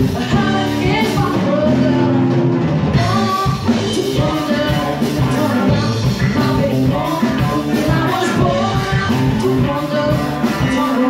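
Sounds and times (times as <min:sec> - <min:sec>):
bass guitar: 0:00.0 - 0:11.0
drum kit: 0:00.0 - 0:11.0
electric guitars: 0:00.0 - 0:11.0
woman singing: 0:00.0 - 0:11.0.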